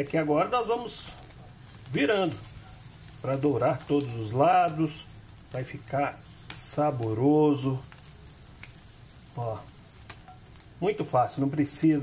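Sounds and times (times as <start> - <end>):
cheese sizzling in a skillet: 0.0 - 12.0.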